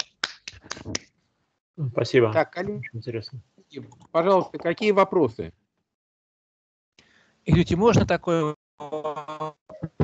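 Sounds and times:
sharp hand claps: 0:00.0 - 0:01.1
man speaking: 0:01.8 - 0:05.5, 0:07.5 - 0:09.6.

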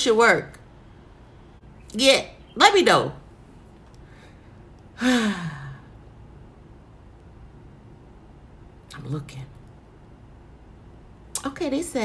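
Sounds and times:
woman sighing: 0:05.0 - 0:06.0.

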